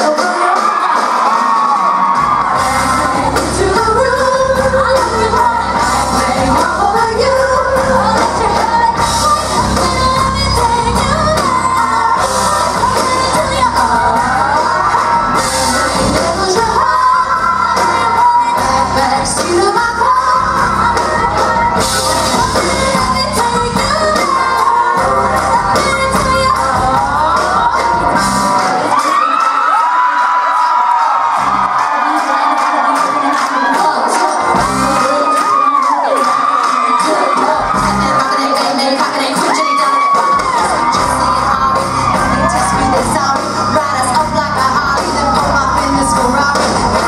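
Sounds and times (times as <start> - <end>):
crowd cheering and whooping: 0.0 - 47.0
drums: 0.0 - 47.0
live band music: 0.0 - 47.0.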